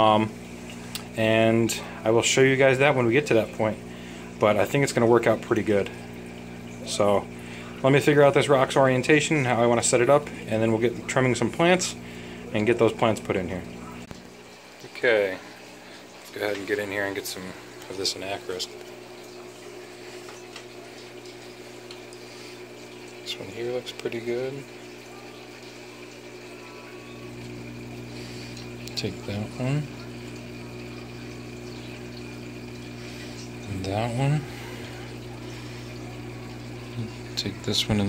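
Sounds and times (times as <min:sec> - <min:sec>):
aquarium water bubbling: 0:00.0 - 0:38.0
low electrical hum: 0:00.0 - 0:38.0.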